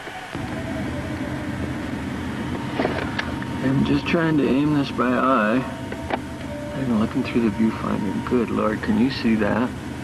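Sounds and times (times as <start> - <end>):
low mechanical hum and rumble: 0.0 - 10.0.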